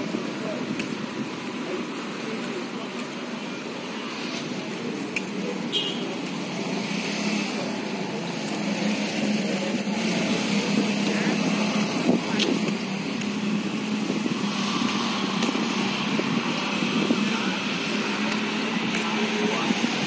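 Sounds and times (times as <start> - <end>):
road traffic noise: 0.0 - 20.0.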